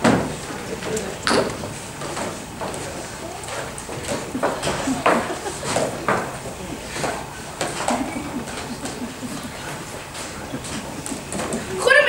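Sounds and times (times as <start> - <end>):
low murmuring voices: 0.0 - 12.0.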